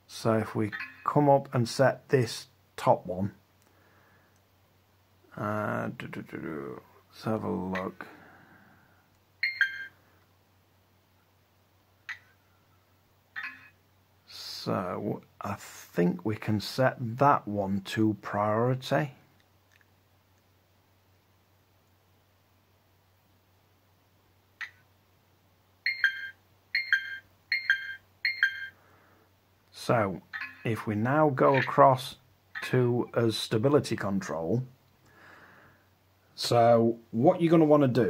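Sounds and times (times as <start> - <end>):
short electronic beeps: 13.4 - 13.8, 25.9 - 28.8, 30.4 - 30.7.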